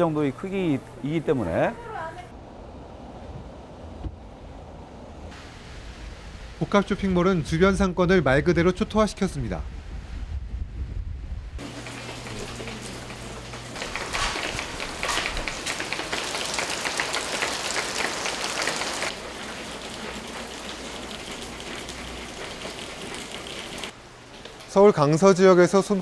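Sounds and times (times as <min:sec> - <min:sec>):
rain dripping off awning: 0:11.6 - 0:25.0.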